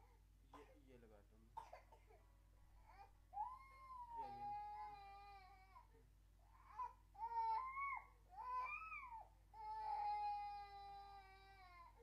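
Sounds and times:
infant crying: 2.8 - 5.9, 6.5 - 12.0.

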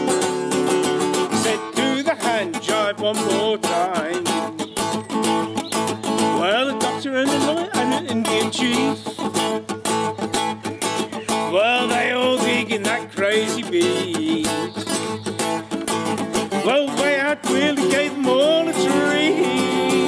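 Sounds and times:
acoustic guitar strummed: 0.0 - 20.0.

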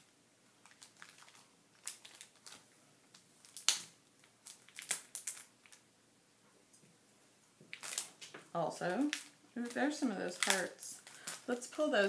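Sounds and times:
plastic packaging crinkling: 0.6 - 5.9, 7.7 - 12.0.

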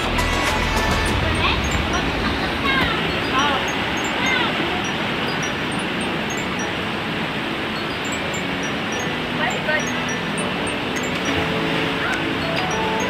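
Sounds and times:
river rapids rushing: 0.0 - 13.0.

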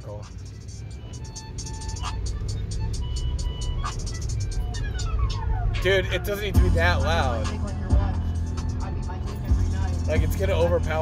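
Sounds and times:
hip-hop beat over car stereo: 0.0 - 11.0.

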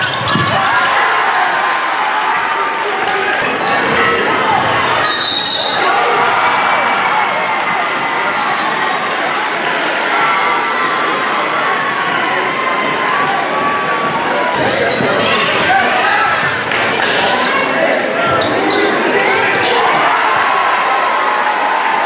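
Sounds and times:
crowd chatter and shouts: 0.0 - 22.0.

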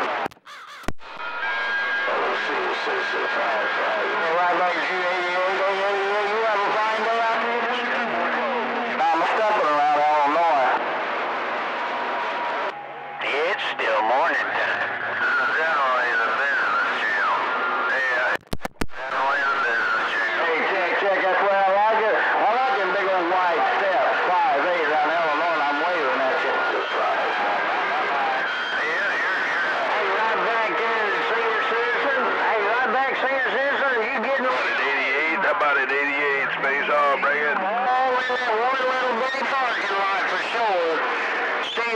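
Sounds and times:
garbled voices over radio: 1.8 - 10.8, 13.2 - 41.9
sharp radio clicks: 18.4 - 19.2.

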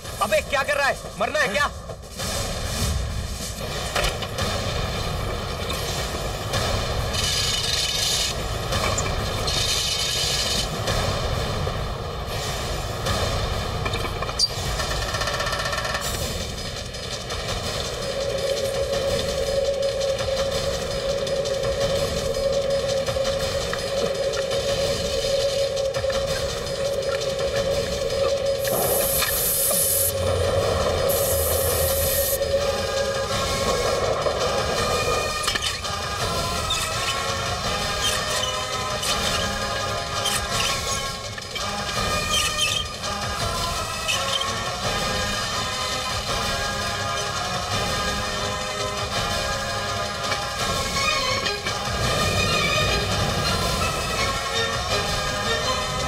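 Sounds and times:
dramatic background music: 0.0 - 56.0
fast-moving train rattling: 0.0 - 56.0.

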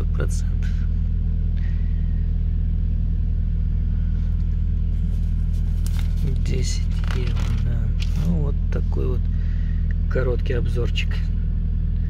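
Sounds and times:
car cabin rumble: 2.6 - 11.7
paper page rustling: 4.9 - 8.4.

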